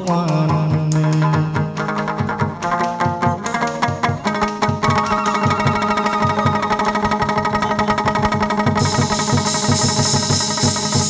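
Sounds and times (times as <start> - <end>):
fast drum beats: 0.0 - 11.0
plucked lute melody: 1.1 - 9.9
cymbals clashing: 3.5 - 11.0.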